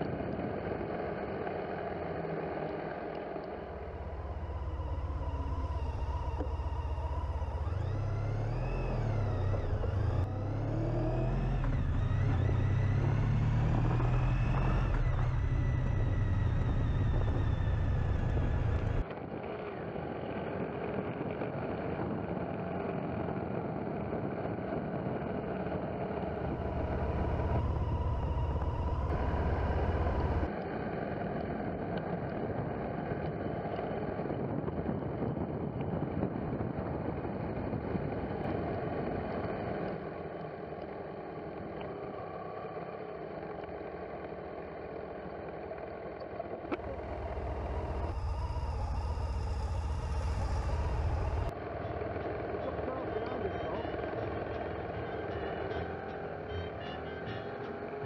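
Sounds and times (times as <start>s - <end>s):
motorcycle engine revving: 3.5s - 19.0s, 25.3s - 30.5s, 38.5s - 58.0s
wind noise on microphone: 31.4s - 39.8s.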